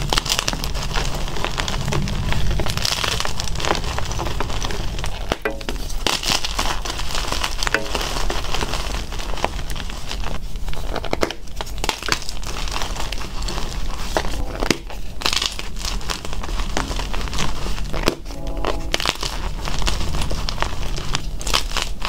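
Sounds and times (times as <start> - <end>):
hands crushing chalk blocks: 4.4 - 18.2.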